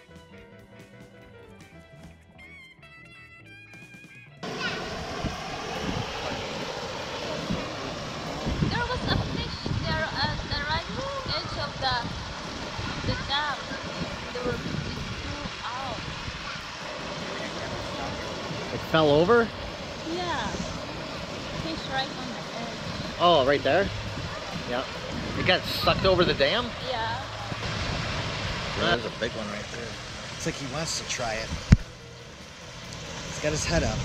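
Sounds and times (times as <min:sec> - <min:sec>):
water pouring over dam spillway: 0:04.4 - 0:31.8, 0:32.4 - 0:34.0.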